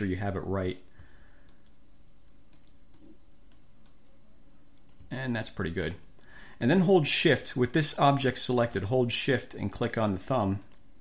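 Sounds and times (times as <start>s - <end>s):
faint steady hum: 0.0s - 11.0s
computer mouse clicking: 1.4s - 4.1s, 4.8s - 5.1s, 10.4s - 10.9s.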